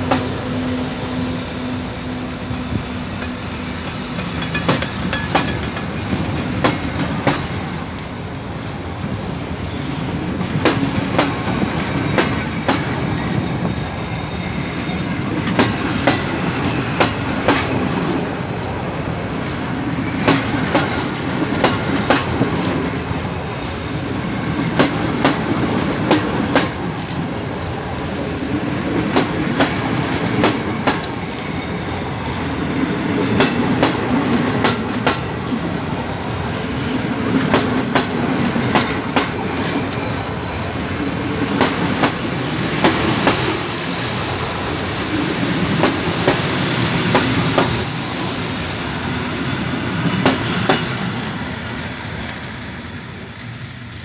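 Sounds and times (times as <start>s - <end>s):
train coaches rumbling past: 0.0s - 54.0s
wheels clacking over rail joints: 2.7s - 8.0s, 14.9s - 18.3s, 20.1s - 23.0s, 24.6s - 36.0s, 36.8s - 43.7s.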